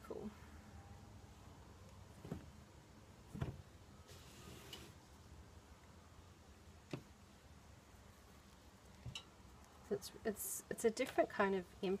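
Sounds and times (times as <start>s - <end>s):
soft fabric rustle: 1.4s - 5.3s.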